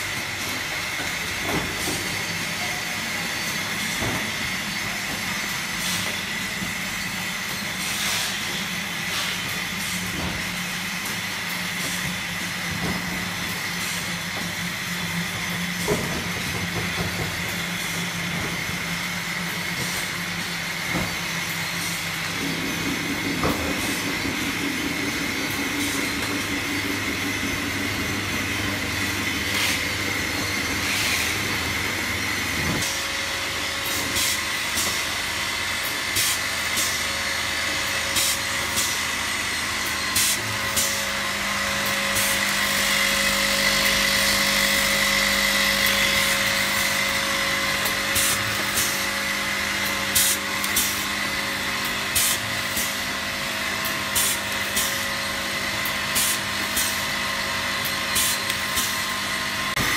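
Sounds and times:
machine hum and hiss: 0.0s - 59.9s
high whine: 20.2s - 35.2s.

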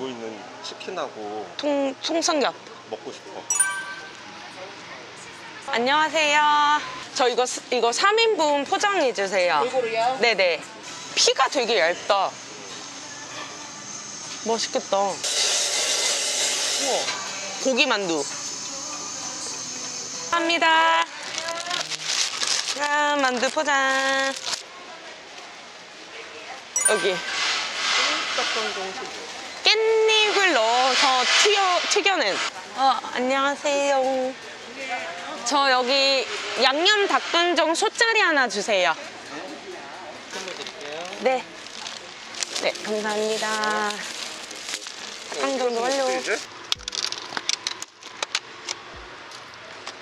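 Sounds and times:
market crowd chatter: 0.0s - 50.0s.

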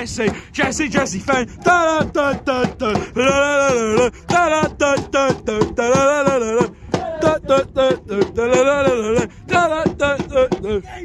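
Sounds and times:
hand drum beating: 0.0s - 10.8s
supporters singing a chant: 0.0s - 10.8s.

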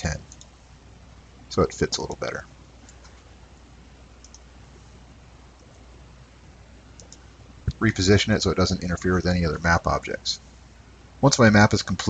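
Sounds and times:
low steady room hum: 0.0s - 12.0s
computer mouse clicks: 0.3s - 0.6s, 4.2s - 4.5s, 7.0s - 7.3s.

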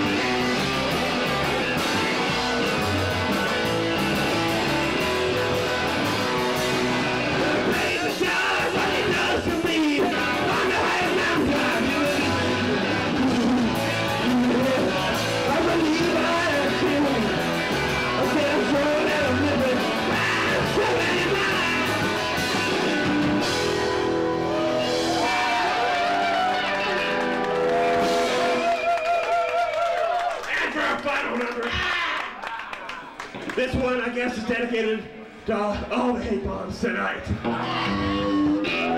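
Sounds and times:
rock band playing with singing: 0.0s - 29.5s, 34.8s - 38.9s.

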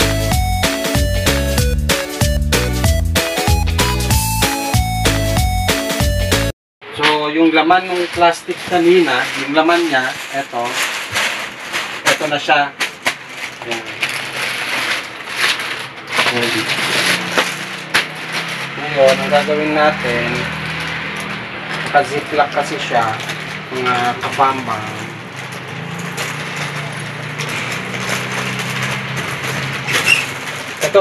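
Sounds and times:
plastic bag crinkling and rustling: 7.2s - 31.0s.

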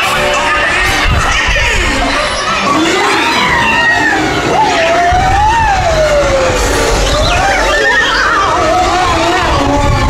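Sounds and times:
wavering whistle-like tone: 6.5s - 8.6s.

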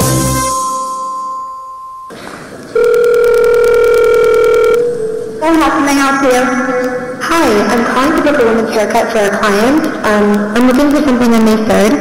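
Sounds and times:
held tone: 0.5s - 5.9s
telephone ringback tone: 1.4s - 5.4s.

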